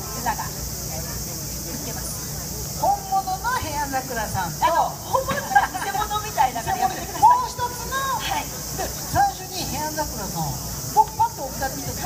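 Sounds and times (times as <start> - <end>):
steady high hiss: 0.0 - 12.0.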